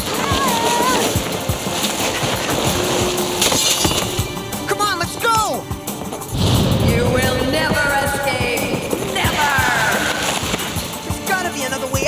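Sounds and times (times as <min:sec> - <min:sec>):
background music: 0:00.0 - 0:12.0
low thuds: 0:03.9 - 0:11.3
rushing whoosh: 0:06.3 - 0:10.9.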